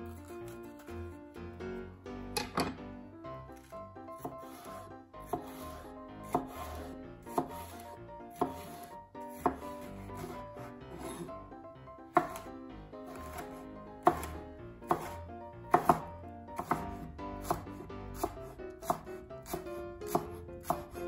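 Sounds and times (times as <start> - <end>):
knife chopping on cutting board: 3.6 - 11.3, 12.2 - 12.5, 13.1 - 21.0.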